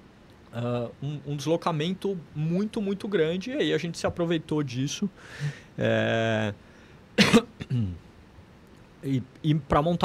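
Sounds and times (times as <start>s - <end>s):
man coughing: 7.2s - 8.0s
throat-clearing grunt: 7.2s - 8.0s.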